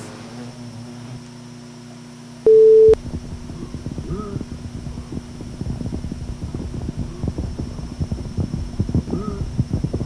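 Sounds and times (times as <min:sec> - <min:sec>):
faint steady hum: 0:00.0 - 0:10.0
loud electronic beep: 0:02.5 - 0:03.0.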